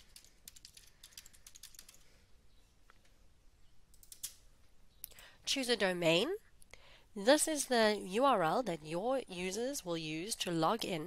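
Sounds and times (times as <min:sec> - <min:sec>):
faint computer keyboard typing: 0:00.0 - 0:02.2, 0:03.9 - 0:04.4.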